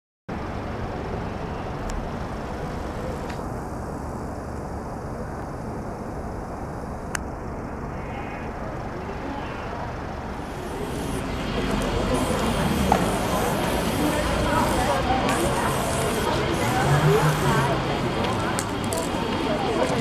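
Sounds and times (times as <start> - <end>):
city road traffic rumble: 0.3 - 20.0.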